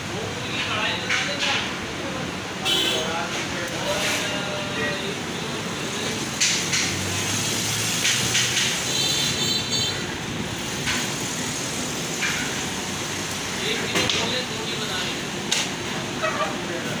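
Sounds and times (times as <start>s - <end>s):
busy background noise: 0.0s - 17.0s.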